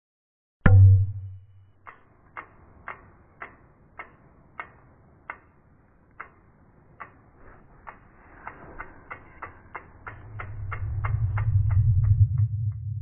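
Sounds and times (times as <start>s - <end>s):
accelerating sharp ticks: 1.6s - 13.0s
deep swell: 8.2s - 13.0s.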